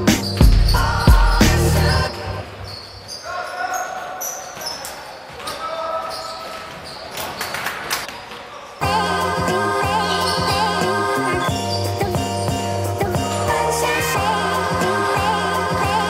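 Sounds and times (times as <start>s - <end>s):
loud background music with beat: 0.0s - 2.4s, 8.8s - 16.0s
players' voices in a hall: 0.7s - 16.0s.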